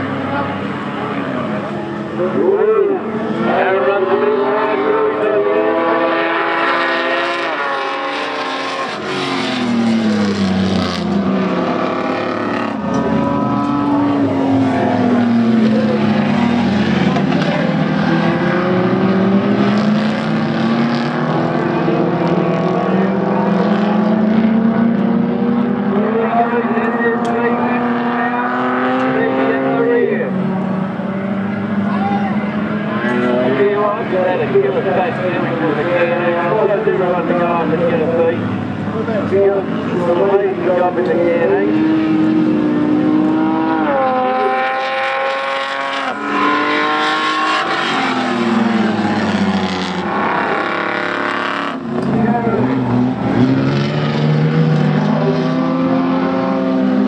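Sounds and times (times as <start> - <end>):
race car engines running hard: 0.0 - 57.0.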